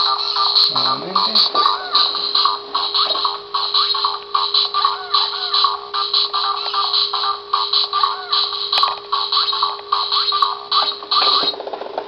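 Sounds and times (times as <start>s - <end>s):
electronic toy tune: 0.0s - 11.5s
rapid clicks: 0.0s - 12.0s
steady hum: 0.0s - 12.0s.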